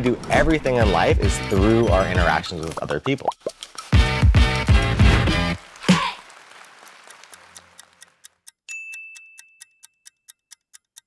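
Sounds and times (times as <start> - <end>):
clock ticking: 7.5 - 11.0
high bell-like ding: 8.7 - 10.1.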